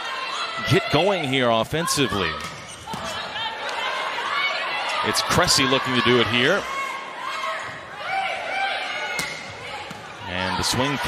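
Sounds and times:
crowd noise: 0.0s - 11.0s
volleyball strike: 2.3s - 3.8s, 9.1s - 10.2s.

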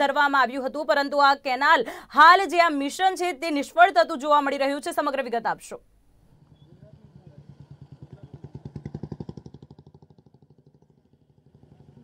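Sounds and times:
passing vehicle engine: 6.3s - 12.0s.

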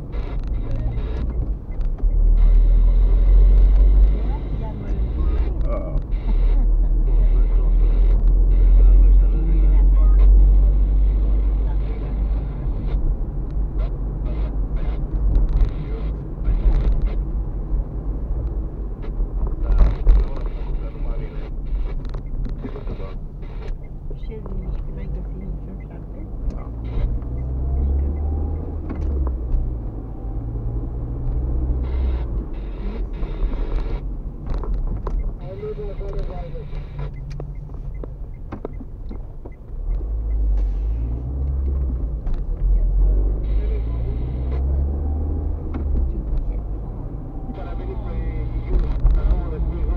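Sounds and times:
car engine and tyres rumbling: 0.0s - 49.9s.

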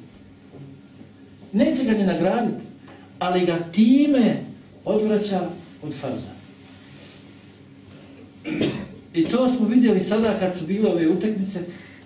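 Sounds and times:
man coughing: 8.4s - 9.0s.

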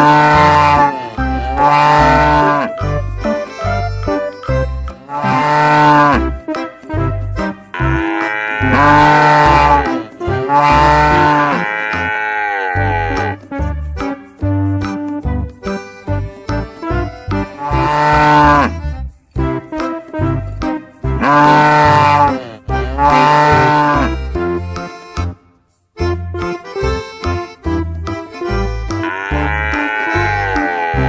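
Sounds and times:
cow mooing: 0.0s - 2.7s, 5.1s - 6.2s, 7.8s - 13.4s, 17.6s - 18.7s, 21.2s - 24.1s, 29.0s - 31.0s
background music with rhythmic bass: 0.0s - 31.0s.

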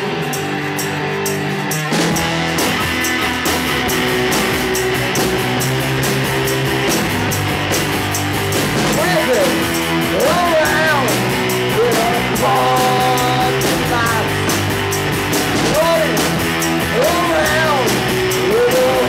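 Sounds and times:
drums and bass: 0.0s - 19.0s
electric guitar riff: 0.0s - 19.0s
person singing: 9.0s - 14.5s, 15.7s - 19.0s.

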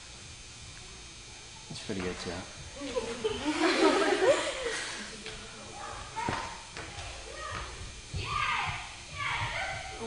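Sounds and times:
feet knocking on floor: 6.2s - 10.0s.

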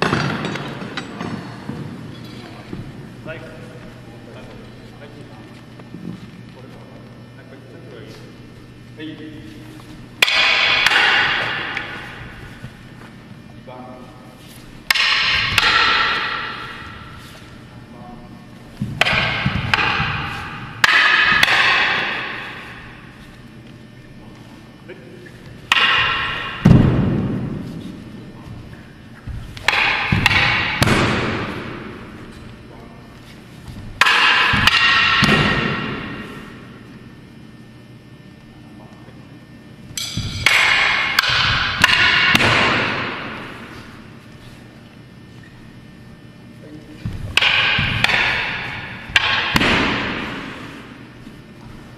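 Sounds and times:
echoing hall noise: 8.8s - 37.7s, 45.1s - 51.9s
wooden staff striking metal: 10.2s - 12.3s, 14.8s - 17.2s, 18.9s - 23.1s, 25.7s - 27.6s, 29.6s - 32.1s, 34.0s - 36.6s, 39.9s - 44.0s, 47.0s - 51.1s.

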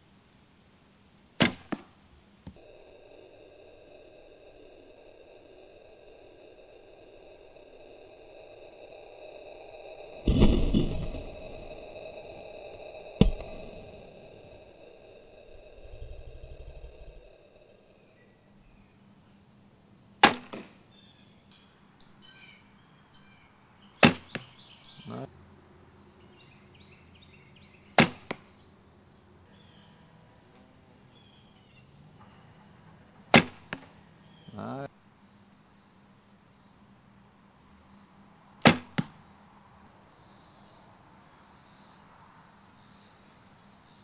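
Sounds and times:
arrow striking foam target: 1.4s - 1.9s, 10.3s - 11.5s, 13.2s - 13.9s, 20.2s - 20.7s, 24.0s - 24.4s, 28.0s - 28.4s, 33.4s - 33.9s, 38.6s - 39.1s
bowstring thump: 13.2s - 14.0s.

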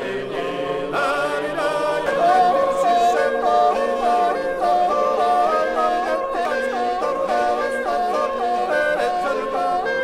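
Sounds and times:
male ensemble singing polyphony: 0.0s - 10.0s
high yodelling top voice: 0.4s - 10.0s.

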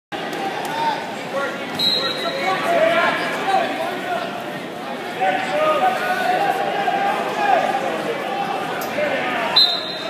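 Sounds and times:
people talking and calling out: 0.2s - 10.0s.

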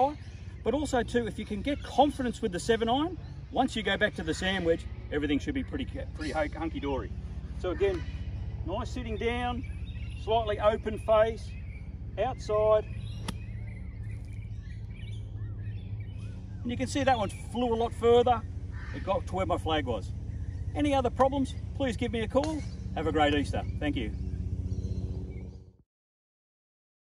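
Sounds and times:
low outdoor rumble: 0.0s - 25.8s
golf club striking sand: 13.2s - 13.5s.

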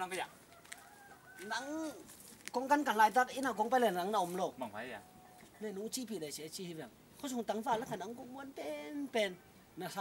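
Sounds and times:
rooster crowing: 0.4s - 2.0s.

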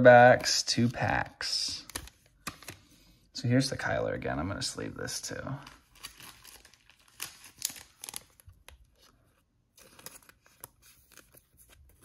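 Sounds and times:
plastic sleeve crinkling: 5.5s - 12.0s.

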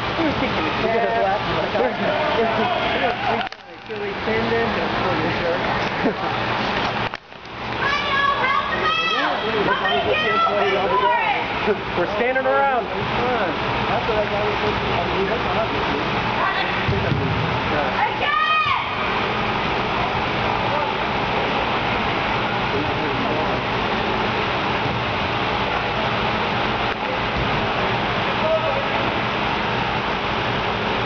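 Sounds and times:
indoor sports hall din: 0.0s - 31.0s
echoing shouts of players: 18.0s - 19.1s.

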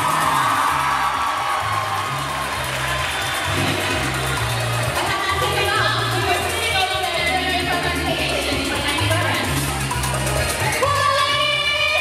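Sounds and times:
pop backing track: 0.0s - 12.0s
woman singing into a microphone: 10.7s - 12.0s.

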